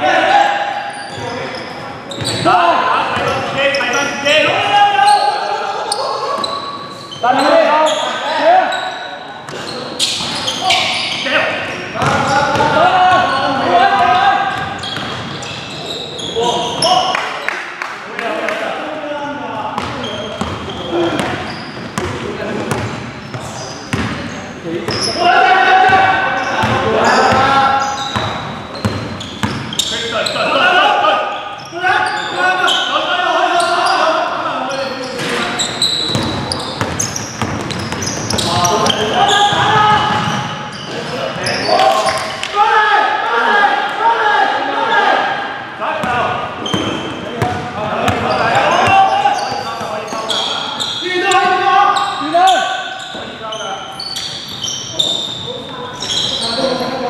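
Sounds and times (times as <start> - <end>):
players calling out: 0.0 - 17.8, 18.6 - 57.0
basketball bouncing on wooden floor: 36.1 - 38.5.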